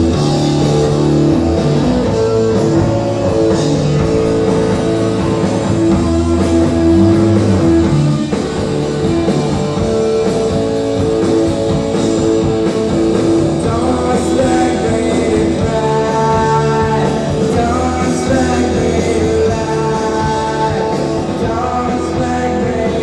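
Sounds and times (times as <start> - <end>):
rock band playing live: 0.0 - 23.0.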